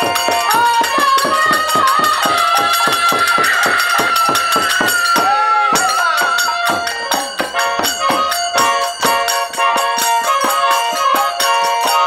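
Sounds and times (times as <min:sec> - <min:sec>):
barrel drums beating: 0:00.0 - 0:10.7
harmonium: 0:00.0 - 0:12.0.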